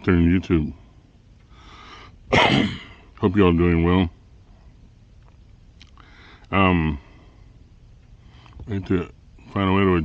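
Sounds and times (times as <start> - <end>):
man breathing in: 0.9 - 2.2, 6.0 - 7.6
man coughing: 2.3 - 3.1.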